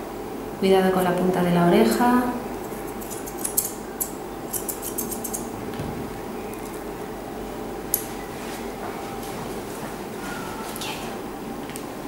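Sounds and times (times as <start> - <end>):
low room hum: 0.0 - 12.0
scissors snipping hair: 2.6 - 5.4.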